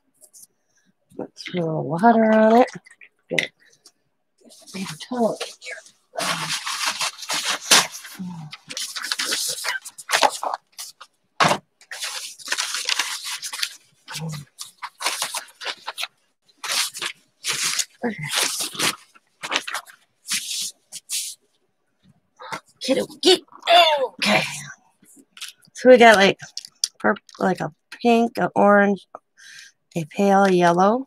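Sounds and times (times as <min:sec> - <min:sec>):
materials rustling and scraping: 0:02.3 - 0:21.4.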